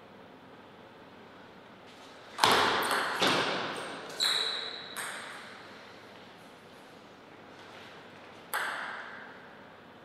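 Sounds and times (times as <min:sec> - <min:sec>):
table tennis ball bouncing: 0:02.4 - 0:05.6, 0:08.5 - 0:09.4.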